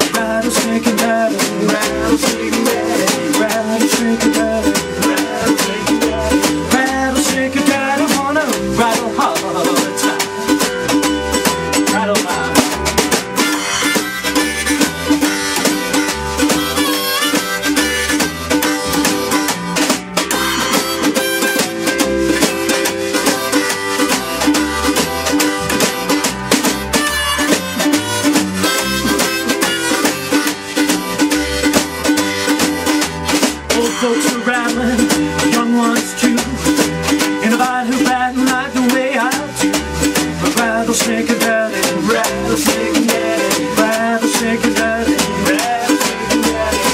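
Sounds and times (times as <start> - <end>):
harmonica melody with bent notes: 0.0 - 46.9
snare drum beat: 0.0 - 46.9
strummed ukulele: 0.0 - 46.9
upright bass: 0.0 - 46.9.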